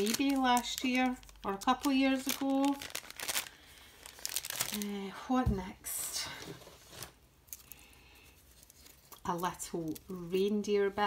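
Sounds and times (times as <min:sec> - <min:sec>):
cloth bag rustling: 0:00.0 - 0:04.8.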